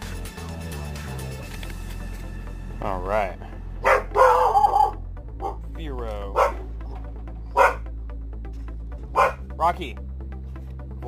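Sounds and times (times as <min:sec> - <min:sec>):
dog barking: 0:03.8 - 0:05.6, 0:06.3 - 0:07.9, 0:09.1 - 0:09.5
dog wavering cry: 0:03.8 - 0:05.6.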